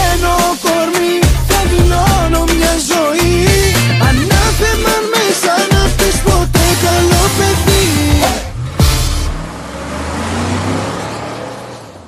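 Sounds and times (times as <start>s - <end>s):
pop song beat and backing: 0.0s - 9.3s.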